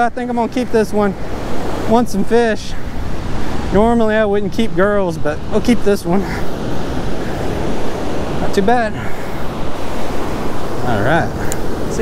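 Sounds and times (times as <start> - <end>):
ocean surf breaking on beach: 0.0 - 12.0.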